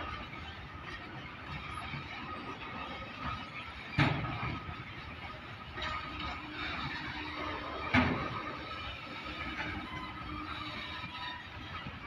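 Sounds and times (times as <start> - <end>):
train wheels rolling on rails: 0.0 - 12.0
faint high wheel squeal: 0.1 - 12.0
loud train clank: 3.3 - 4.9, 5.7 - 11.5.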